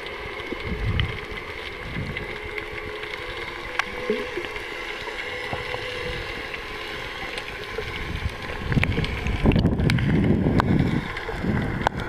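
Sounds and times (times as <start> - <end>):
water rushing and rumbling: 0.0 - 12.0.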